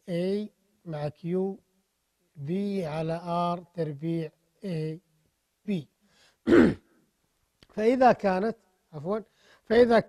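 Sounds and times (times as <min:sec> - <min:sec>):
man speaking: 0:00.0 - 0:01.6, 0:02.3 - 0:05.1, 0:05.7 - 0:05.9, 0:07.7 - 0:10.0
man clearing throat: 0:06.5 - 0:07.0.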